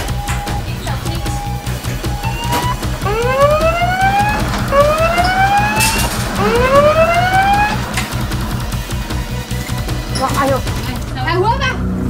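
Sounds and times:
rising siren-like wails: 0:00.0 - 0:09.7
background music with steady beat: 0:00.0 - 0:12.0.

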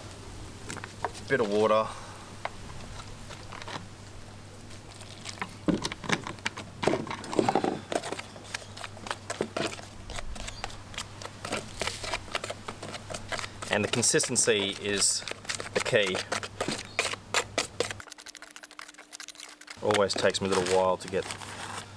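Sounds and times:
fingers mixing slurry in plastic tub: 0:07.5 - 0:21.4.

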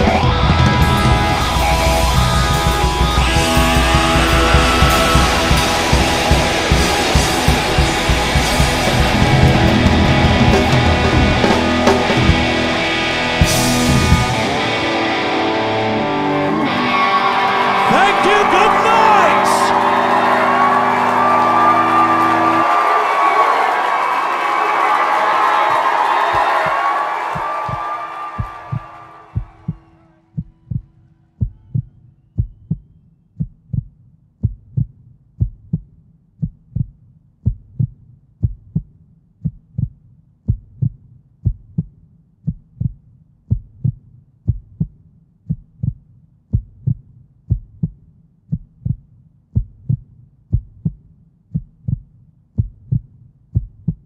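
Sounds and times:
rock band chord ringing: 0:00.1 - 0:22.6.

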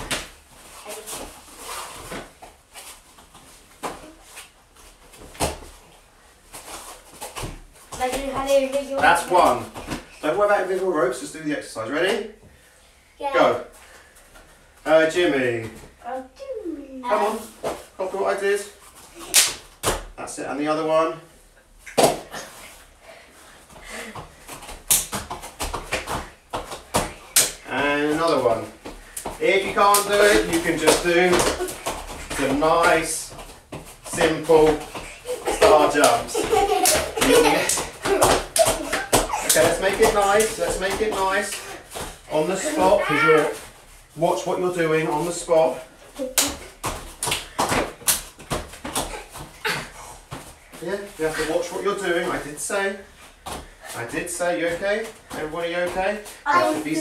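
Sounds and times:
hands and feet thumping on mat: 0:00.0 - 0:05.9, 0:21.9 - 0:22.8, 0:23.7 - 0:43.8, 0:46.2 - 0:52.4.

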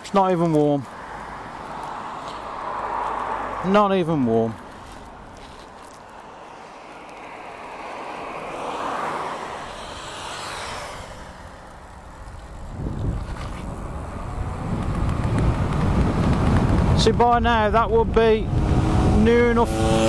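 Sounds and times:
road vehicle passing: 0:00.0 - 0:20.0
wind buffeting microphone: 0:11.8 - 0:20.0.

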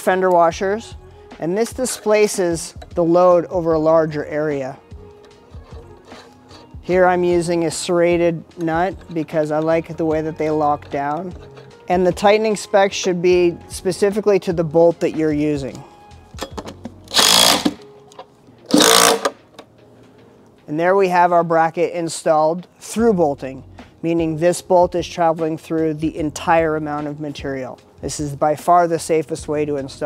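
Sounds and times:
metal washers and nut clicking: 0:05.1 - 0:12.0
cordless impact driver bursts: 0:17.1 - 0:17.8, 0:18.7 - 0:19.4.

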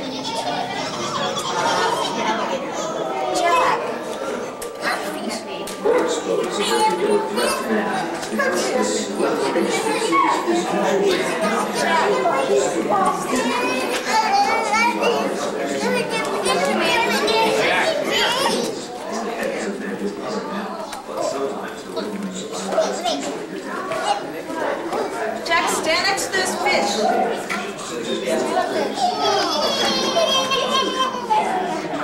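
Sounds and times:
children talking and calling out: 0:00.0 - 0:32.0.

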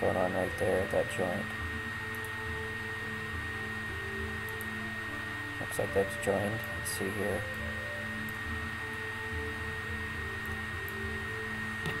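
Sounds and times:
steady background hum: 0:00.0 - 0:12.0
thin high whine: 0:00.0 - 0:12.0.

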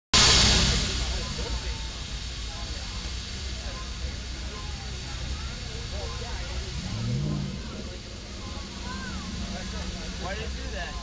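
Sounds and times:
faint voices: 0:00.2 - 0:11.0
subwoofer bass music: 0:00.2 - 0:11.0.

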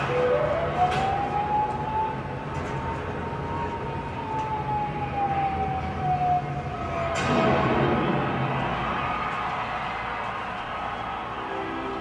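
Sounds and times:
long wailing tone: 0:00.0 - 0:07.5.

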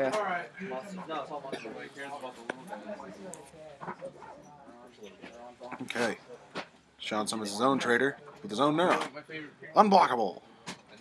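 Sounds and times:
background voices murmuring: 0:00.0 - 0:06.9
man speaking close to microphone: 0:05.6 - 0:06.3.

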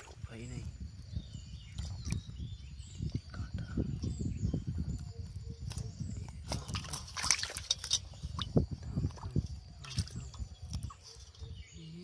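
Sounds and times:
small water splashes: 0:01.7 - 0:02.3, 0:06.4 - 0:11.3.

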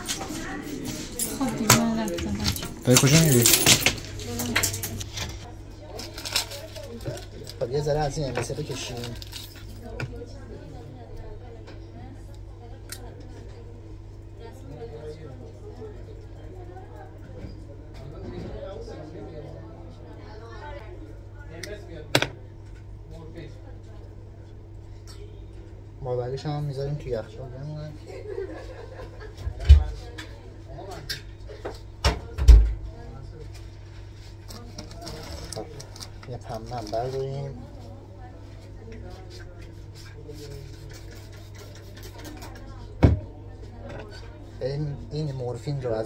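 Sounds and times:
low machine hum: 0:00.0 - 0:46.0.

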